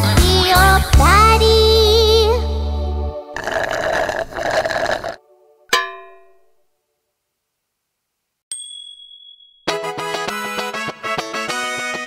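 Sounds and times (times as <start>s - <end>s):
bright ding: 5.7s - 6.6s, 8.5s - 9.7s.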